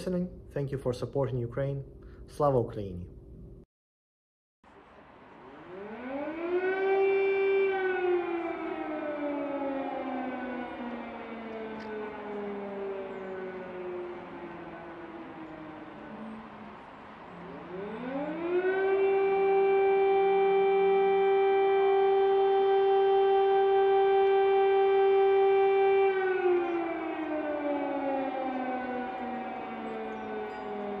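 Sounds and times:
air raid siren wailing: 0:04.7 - 0:31.0.

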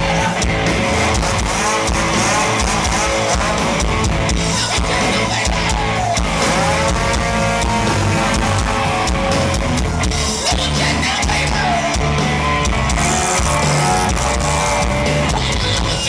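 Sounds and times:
rock band playing: 0:00.0 - 0:16.0
chainsaw engine revving: 0:00.5 - 0:04.1, 0:06.2 - 0:09.7, 0:12.8 - 0:15.8.

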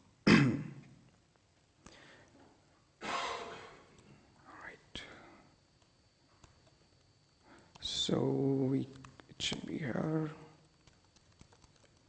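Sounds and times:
faint whispered mutter: 0:04.4 - 0:05.6.

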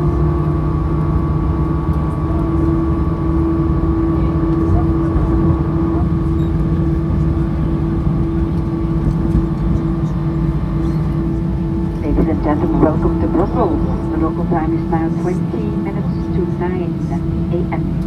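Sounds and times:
jet engine rumble in cabin: 0:00.0 - 0:18.0.

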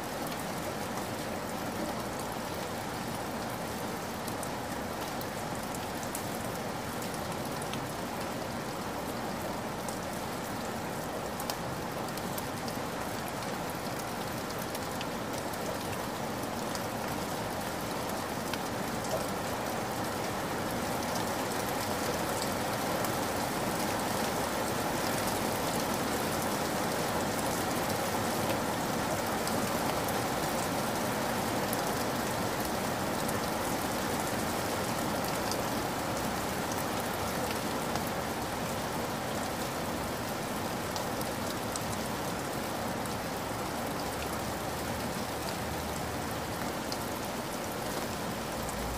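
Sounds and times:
steady rain hiss: 0:00.0 - 0:48.9.

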